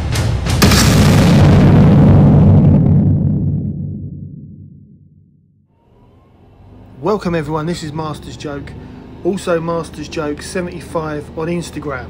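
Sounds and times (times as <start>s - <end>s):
low rumble of boom effect: 0.5s - 5.6s
car engine and road noise: 5.8s - 12.0s.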